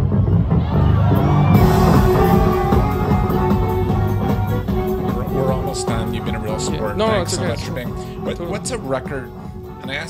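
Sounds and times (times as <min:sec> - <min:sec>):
live band with horns: 0:01.5 - 0:09.7.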